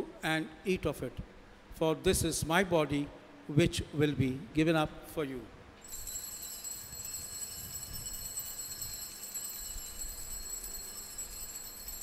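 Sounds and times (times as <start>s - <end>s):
altar bells ringing: 5.8s - 12.0s.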